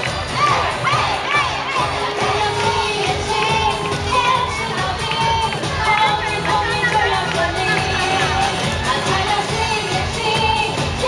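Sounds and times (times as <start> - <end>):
children shouting: 0.0 - 9.4
baseball crowd cheering: 0.0 - 10.6.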